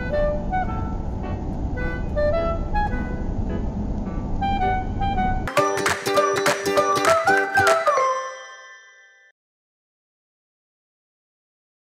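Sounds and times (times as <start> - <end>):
music chord ringing out: 0.0 - 9.3.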